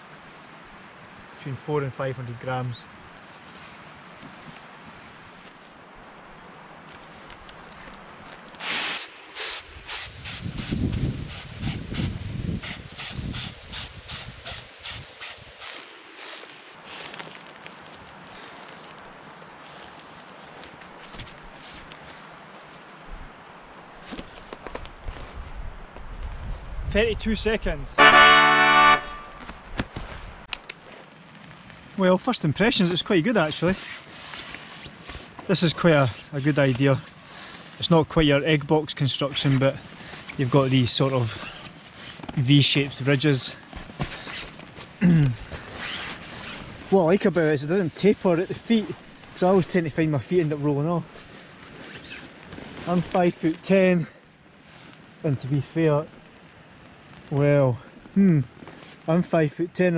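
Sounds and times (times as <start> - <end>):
steady background hiss: 0.0 - 25.2, 26.9 - 59.9
nylon mat rustling: 8.2 - 18.9, 20.5 - 23.4, 33.6 - 37.8, 43.5 - 49.7, 51.0 - 53.5
sharp snaps: 30.5 - 30.8.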